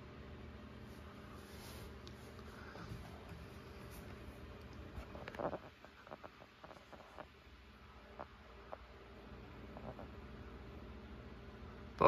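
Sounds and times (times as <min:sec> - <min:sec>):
computer low hum: 0:00.0 - 0:12.0.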